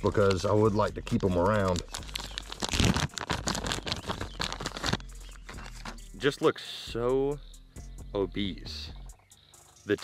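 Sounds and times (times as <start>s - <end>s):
plastic bag crinkling: 1.1s - 6.0s.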